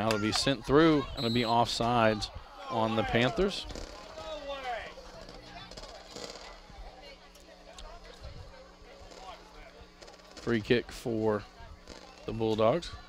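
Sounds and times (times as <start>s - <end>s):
distant voices and shouts: 0.0s - 13.0s
steady low hum: 0.0s - 13.0s.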